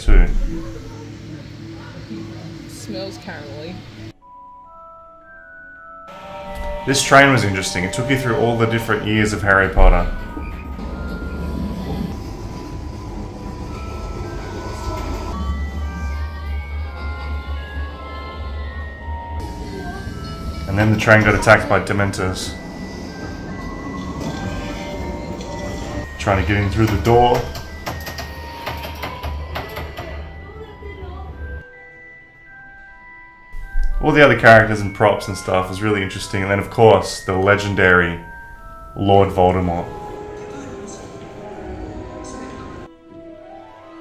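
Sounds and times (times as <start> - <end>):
faint music: 0.0 - 5.4, 6.0 - 44.0
railway carriage rumble: 6.3 - 31.6, 33.7 - 42.9.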